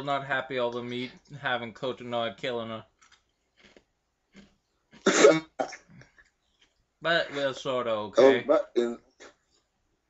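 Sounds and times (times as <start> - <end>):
person coughing: 5.0 - 6.0, 8.2 - 9.0.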